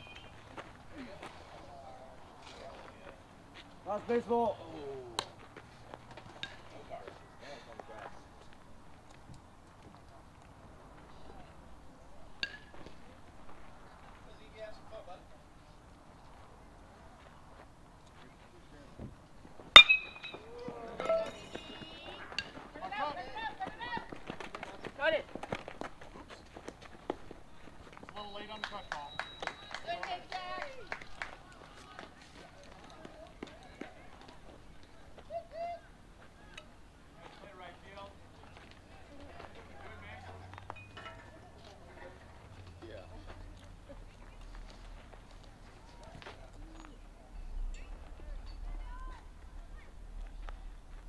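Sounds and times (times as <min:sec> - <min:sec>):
baseball bat hitting ball: 0:12.4 - 0:12.8, 0:19.7 - 0:22.6.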